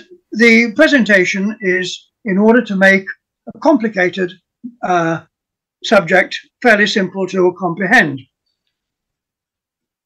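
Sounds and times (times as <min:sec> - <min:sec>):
man speaking: 0:00.0 - 0:08.4.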